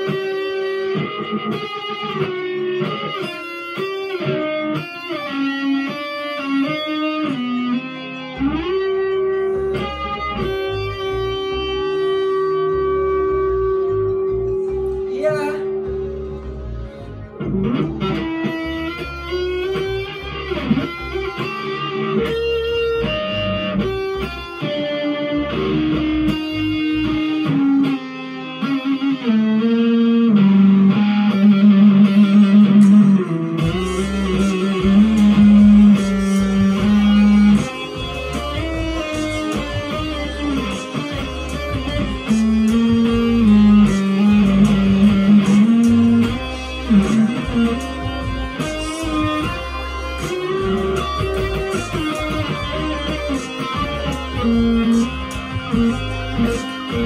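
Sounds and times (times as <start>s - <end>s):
low bass backing: 0.0s - 27.9s, 28.6s - 57.0s
electric guitar melody: 0.0s - 57.0s.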